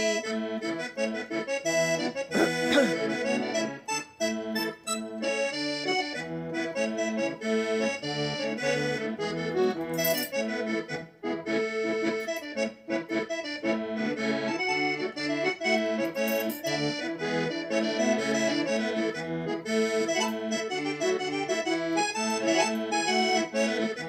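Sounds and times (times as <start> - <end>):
electronic keyboard folk tune: 0.0 - 24.0.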